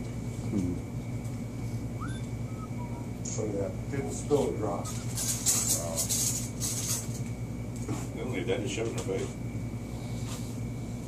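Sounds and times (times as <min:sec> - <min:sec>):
ventilation hum: 0:00.0 - 0:11.0.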